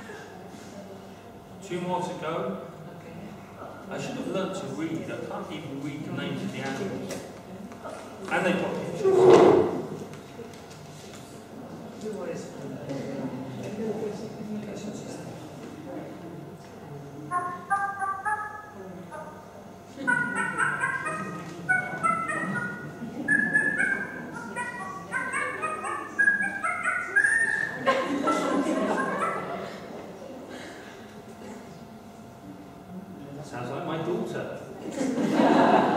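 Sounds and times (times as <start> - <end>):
wavering animal call: 17.3 - 29.7
dog yipping and barking: 20.1 - 27.6, 28.9 - 29.5.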